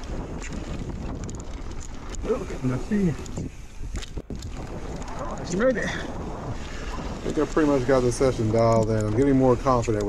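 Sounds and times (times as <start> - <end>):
bike tyres rolling on dirt: 0.0 - 10.0
wind on microphone: 0.0 - 10.0.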